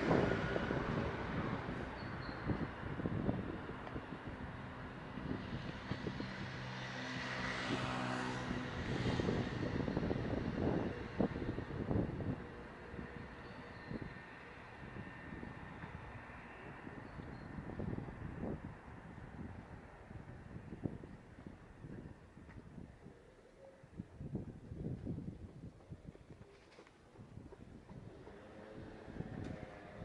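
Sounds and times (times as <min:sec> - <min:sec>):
vehicle engine passing: 0:00.0 - 0:02.0, 0:04.1 - 0:13.4, 0:28.0 - 0:30.0.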